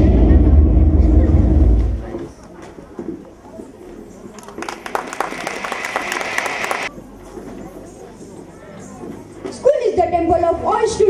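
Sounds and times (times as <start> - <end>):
audience applauding: 4.4 - 6.9.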